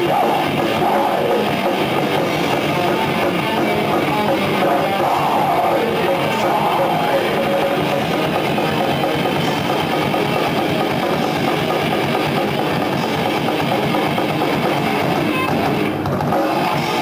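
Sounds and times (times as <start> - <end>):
death metal band playing: 0.0 - 17.0.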